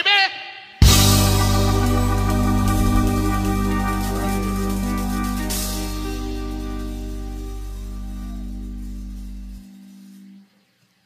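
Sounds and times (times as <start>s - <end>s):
electric blues chord ringing: 0.8s - 9.6s.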